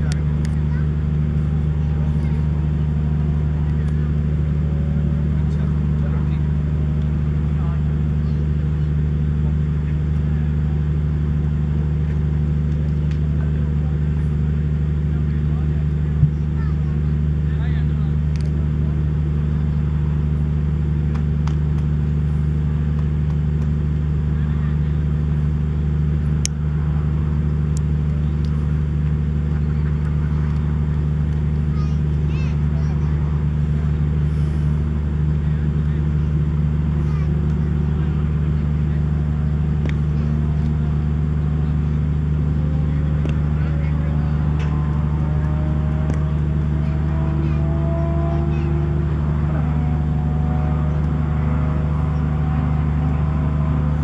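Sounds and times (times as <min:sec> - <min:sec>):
low mechanical hum: 0:00.0 - 0:54.0.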